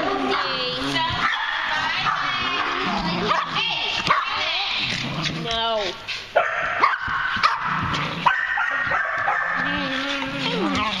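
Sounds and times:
dog yipping: 0:06.4 - 0:11.0
dog whining: 0:08.8 - 0:11.0.

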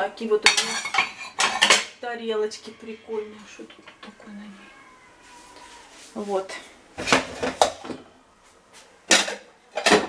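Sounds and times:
ceramic dishes clattering: 0:00.4 - 0:02.0, 0:09.1 - 0:10.0.

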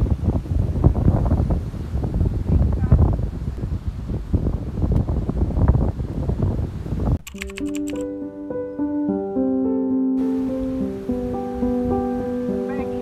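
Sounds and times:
wind buffeting microphone: 0:00.0 - 0:07.2
quick clicks: 0:07.2 - 0:08.1
soft music of held notes: 0:07.5 - 0:13.0.

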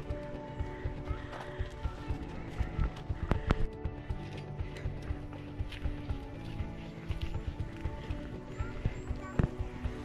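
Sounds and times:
footsteps on wooden planks: 0:00.0 - 0:10.0.

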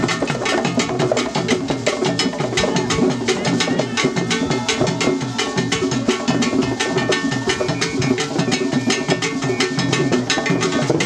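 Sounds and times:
drum ensemble playing: 0:00.0 - 0:11.0.

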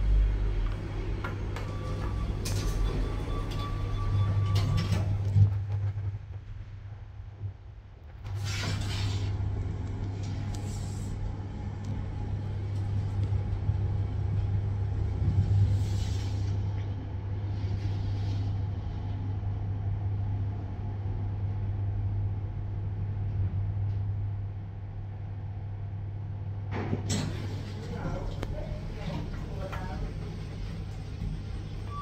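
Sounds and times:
elevator humming and rumbling: 0:00.0 - 0:32.0.

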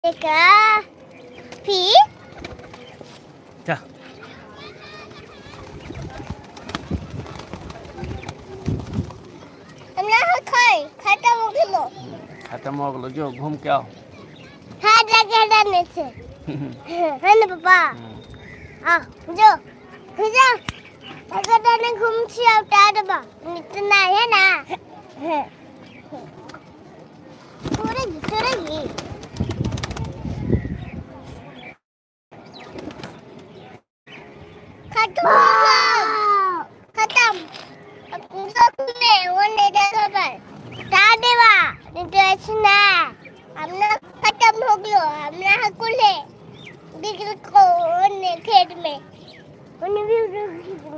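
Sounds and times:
pigeons moving about: 0:00.1 - 0:30.7
pigeons flapping wings: 0:01.8 - 0:03.2, 0:04.7 - 0:09.9, 0:27.4 - 0:30.4.

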